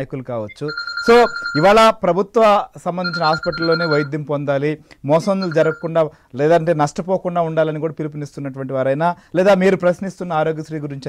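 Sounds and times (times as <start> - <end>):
electronic phone ring: 0.5 - 2.0, 3.0 - 4.2, 5.2 - 6.0
men talking: 2.9 - 4.2, 5.1 - 7.8.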